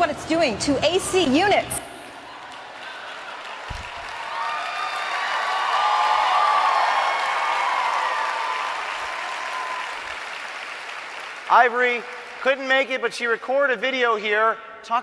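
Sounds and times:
audience applauding: 2.1s - 13.5s.

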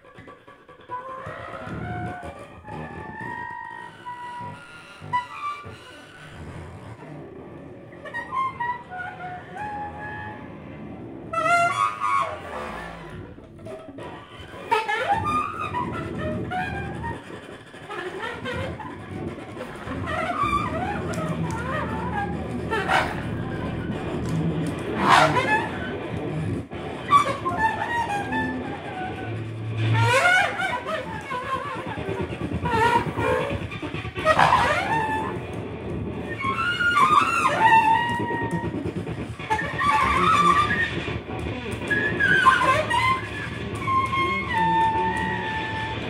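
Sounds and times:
low cello tones: 0.0s - 46.0s.

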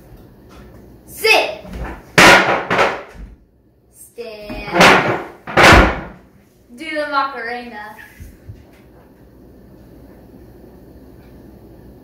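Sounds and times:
thuds of sitting on a chair: 4.5s - 6.2s.

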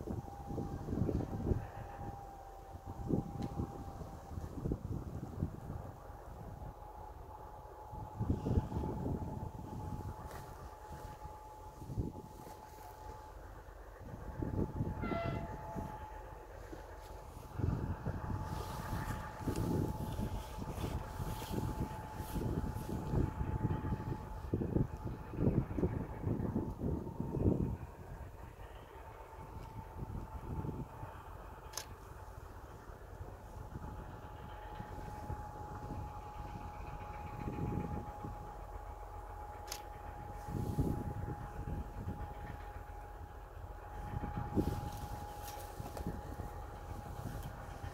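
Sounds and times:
diesel locomotive rumble: 0.0s - 47.9s
steady high whine: 0.0s - 47.9s
horn-like tone: 8.0s - 25.1s.

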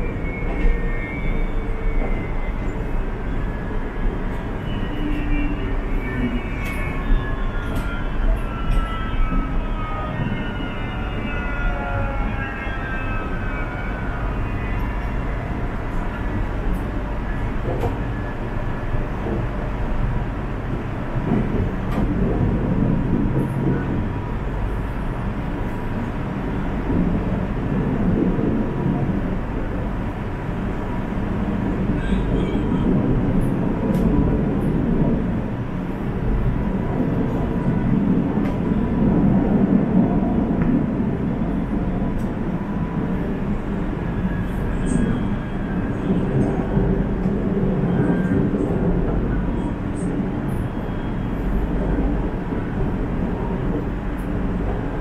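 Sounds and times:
train wheels rumbling on track: 0.0s - 55.0s.

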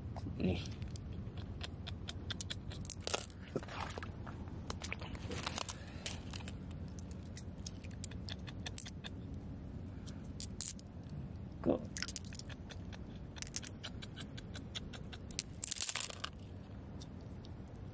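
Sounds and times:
shells and stones clicking in water: 2.1s - 3.4s, 12.0s - 12.8s, 13.4s - 13.8s, 15.3s - 16.4s.

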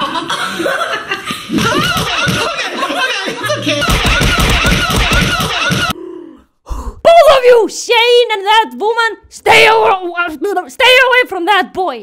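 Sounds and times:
people laughing and chuckling: 0.0s - 6.0s
people talking: 1.6s - 5.9s.

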